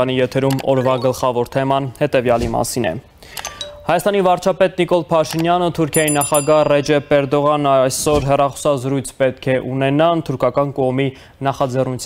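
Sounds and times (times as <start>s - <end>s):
short electronic chime: 3.4s - 4.2s.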